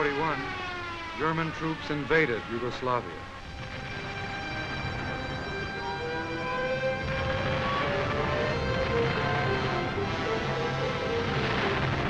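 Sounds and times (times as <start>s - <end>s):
aircraft engines droning: 0.0s - 12.0s
film score held notes: 0.0s - 12.0s.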